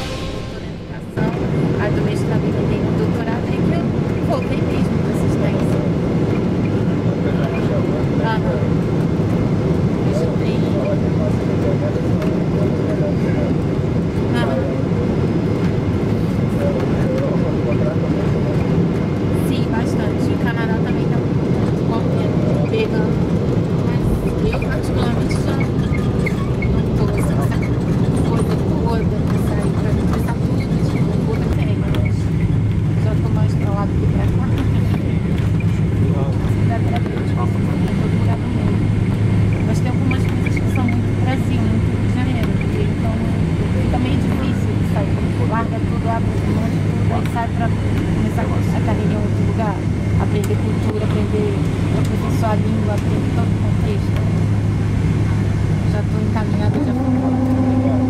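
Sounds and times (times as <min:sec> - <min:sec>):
jet engines and airflow rumble: 0:00.0 - 0:58.0.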